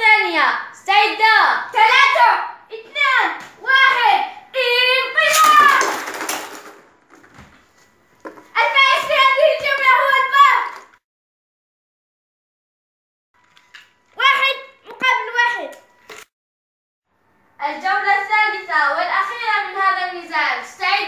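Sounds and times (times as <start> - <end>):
children shouting: 3.7 - 6.0.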